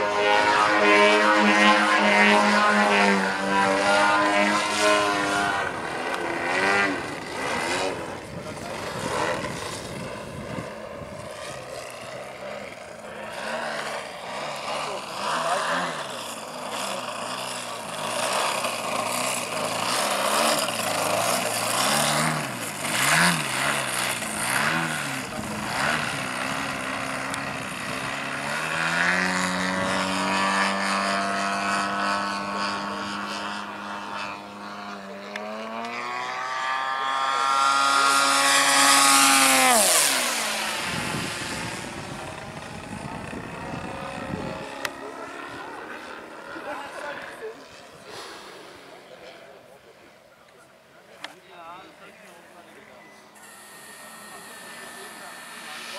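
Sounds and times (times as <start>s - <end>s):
model plane engine and propeller: 0.0s - 55.9s.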